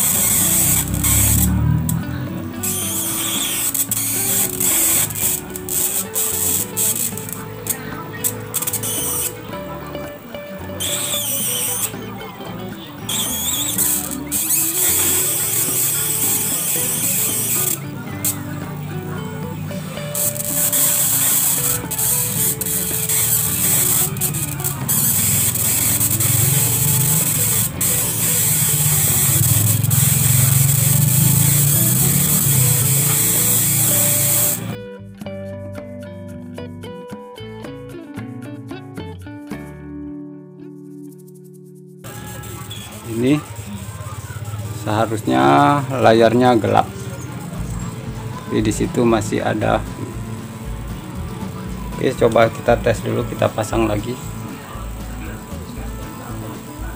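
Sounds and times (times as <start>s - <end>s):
high-voltage arcing hissing and crackling: 0.0s - 9.5s, 10.6s - 34.8s, 42.0s - 56.9s.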